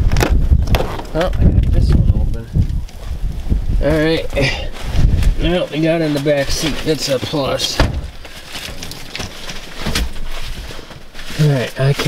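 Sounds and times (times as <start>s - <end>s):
microphone handling noise: 0.0s - 12.0s
rustling and light knocks: 4.7s - 12.0s.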